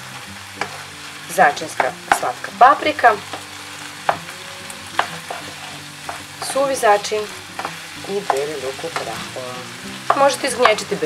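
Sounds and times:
meat sizzling in a pan: 0.0 - 11.0
sharp taps on pan: 1.8 - 2.3, 5.0 - 6.5, 10.0 - 11.0.

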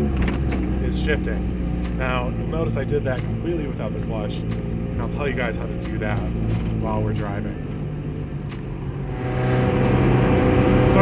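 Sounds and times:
car engine running under way: 0.0 - 11.0.

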